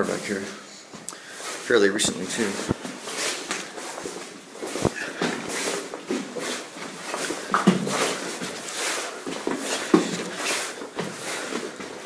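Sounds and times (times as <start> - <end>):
close breathing: 0.5 - 1.7, 4.7 - 11.9.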